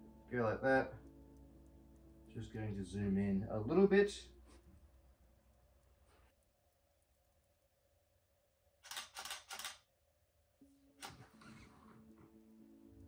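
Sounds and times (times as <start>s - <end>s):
soft music with held notes: 0.0s - 4.8s, 10.6s - 13.0s
camera shutter firing: 8.8s - 9.8s.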